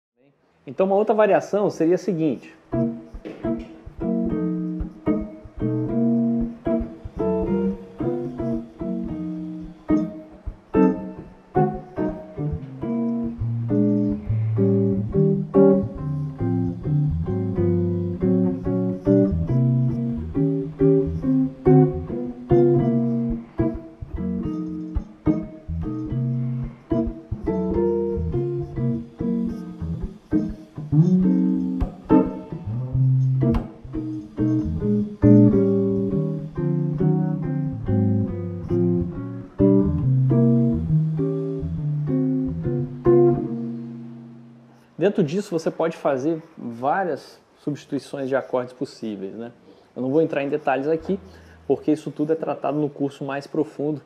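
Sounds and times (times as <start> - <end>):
electric guitar playing jazz chords: 2.6 - 44.9.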